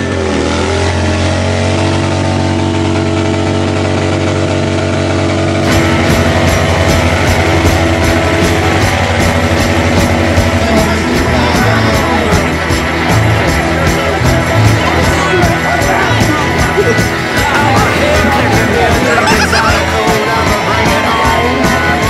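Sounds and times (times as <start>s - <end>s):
loud music: 0.0s - 22.0s
motorcycle engine running: 0.0s - 22.0s.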